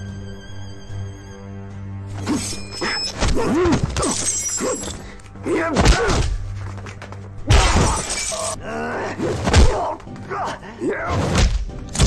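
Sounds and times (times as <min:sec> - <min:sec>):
glass shattering: 0:07.5 - 0:08.6.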